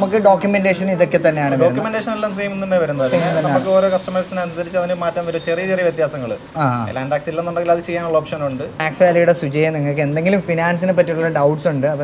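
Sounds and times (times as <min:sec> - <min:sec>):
men talking: 0:00.0 - 0:12.0
steady hiss: 0:02.1 - 0:08.7.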